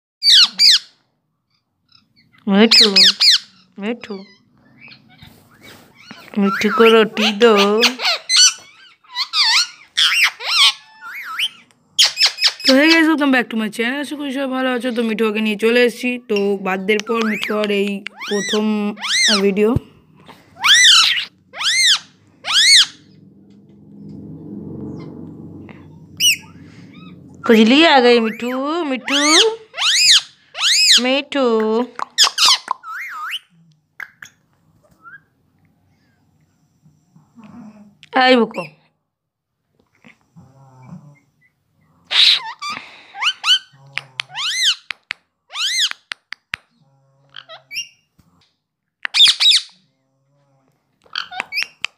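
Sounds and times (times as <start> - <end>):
parakeet chattering calls: 0.2 - 0.9, 1.9 - 5.2, 6.0 - 13.0, 16.9 - 19.6, 20.6 - 23.2, 28.2 - 31.1, 32.0 - 34.4, 42.1 - 44.9, 45.5 - 46.1, 49.1 - 49.8
faint bird chirp: 20.6 - 31.1.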